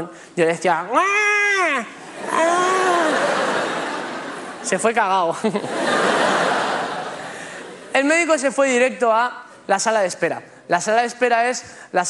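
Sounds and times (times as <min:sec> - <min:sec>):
man wailing yell: 0:00.9 - 0:03.6
audience laughter: 0:03.0 - 0:07.9.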